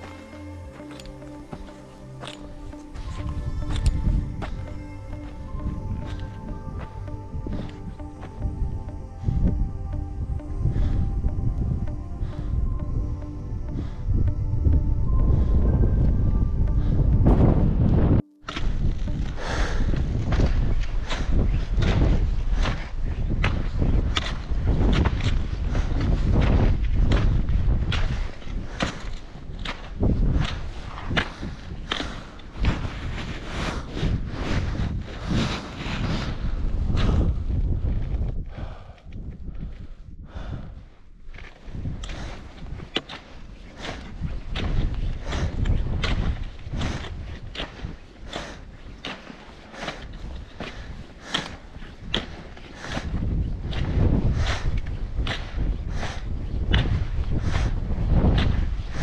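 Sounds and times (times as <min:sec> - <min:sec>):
wind buffeting microphone: 0:02.5 - 0:59.0.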